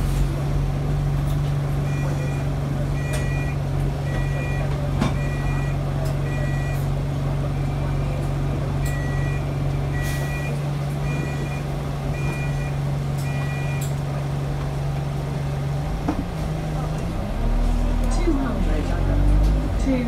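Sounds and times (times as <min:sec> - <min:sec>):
bus engine idling: 0:00.0 - 0:20.0
two-tone electronic warning beeps: 0:01.8 - 0:06.9, 0:08.8 - 0:14.0.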